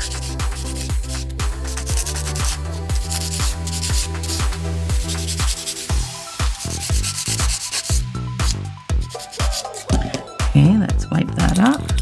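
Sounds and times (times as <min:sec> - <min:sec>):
sanding sponge rubbing on nail: 0:00.0 - 0:10.0.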